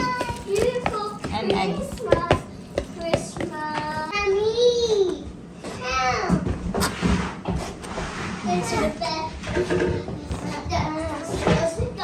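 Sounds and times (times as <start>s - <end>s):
wooden spoon knocking bowl: 0.0s - 3.9s
child's voice: 0.0s - 6.6s, 8.4s - 12.0s.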